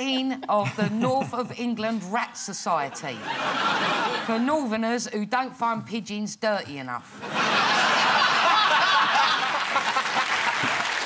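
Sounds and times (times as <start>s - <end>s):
audience laughing and clapping: 3.0s - 4.4s, 7.2s - 11.0s.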